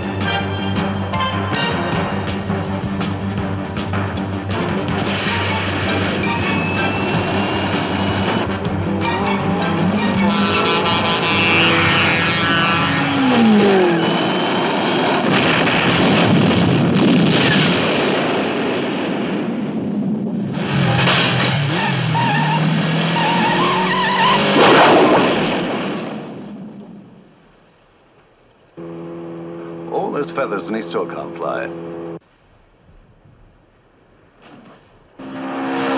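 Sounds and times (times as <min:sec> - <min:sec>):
dramatic music: 0:00.0 - 0:15.4
vehicle engine noise: 0:00.0 - 0:16.6, 0:28.3 - 0:32.2
rocket-propelled motorcycle: 0:05.0 - 0:15.3
explosion: 0:13.4 - 0:21.8, 0:24.4 - 0:26.8.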